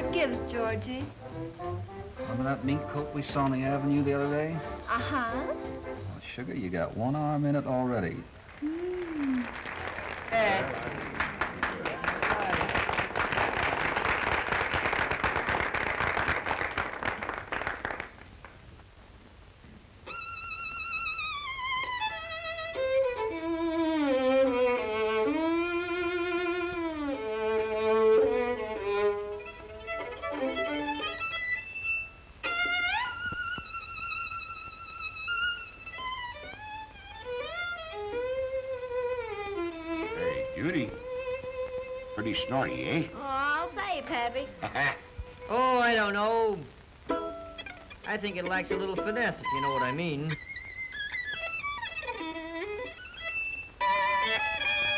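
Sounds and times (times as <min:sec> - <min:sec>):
solo violin slow melody: 0:00.0 - 0:06.6, 0:20.0 - 0:45.6, 0:47.1 - 0:54.9.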